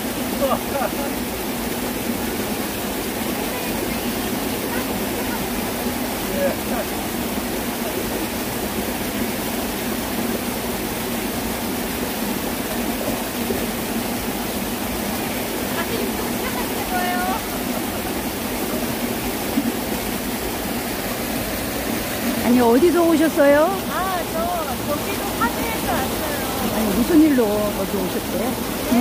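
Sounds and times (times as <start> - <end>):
stream running over rocks: 0.0 - 29.0.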